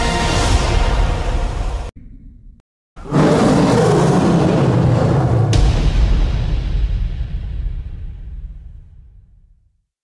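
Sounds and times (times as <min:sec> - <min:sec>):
lion roaring: 0:02.0 - 0:05.7.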